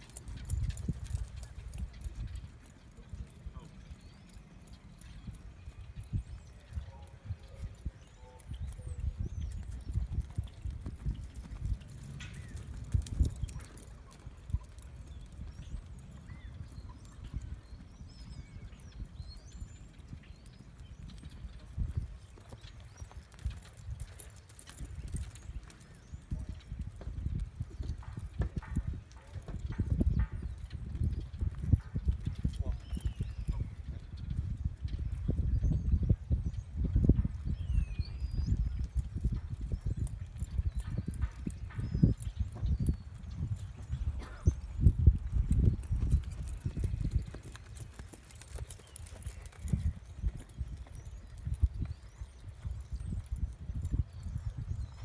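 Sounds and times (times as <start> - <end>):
horse hoofbeats on sand: 8.9 - 34.1, 36.5 - 55.0.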